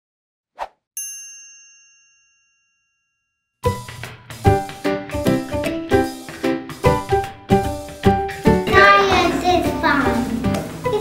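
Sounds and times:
bright bell-like ding: 1.0 - 3.4
music track: 3.6 - 11.0.

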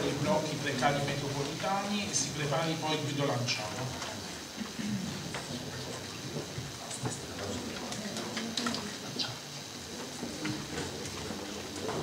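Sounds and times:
faint low voices: 0.0 - 12.0.

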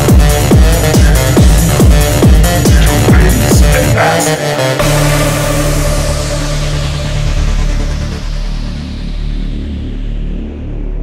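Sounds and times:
deep bass drone: 0.0 - 11.0.

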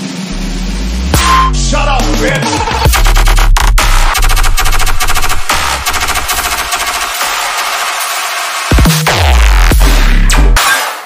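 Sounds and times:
heavy bass line: 0.0 - 7.4, 8.7 - 10.6
stuttering electronic hits: 0.0 - 11.0.

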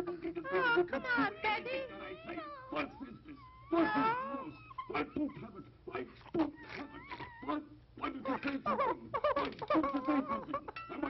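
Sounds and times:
high wavering cat-like wails: 0.5 - 5.0, 6.4 - 7.6.

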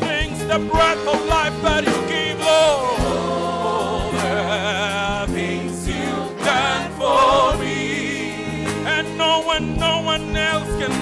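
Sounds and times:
gospel singing with vibrato: 0.0 - 11.0
sustained bass and keyboard: 0.0 - 11.0.

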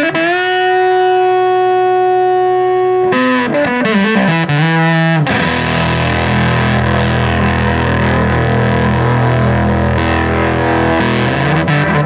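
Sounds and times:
distorted electric guitar: 0.0 - 12.0.

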